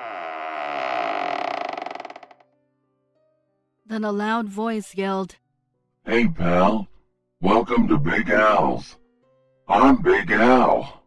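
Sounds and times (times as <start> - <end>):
buzzy fart sound effect: 0.0 - 2.3.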